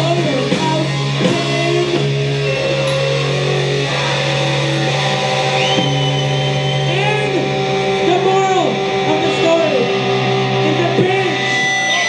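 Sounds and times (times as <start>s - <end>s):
electric guitars sustained notes: 0.0s - 12.0s
heavy metal band playing live: 0.0s - 12.0s.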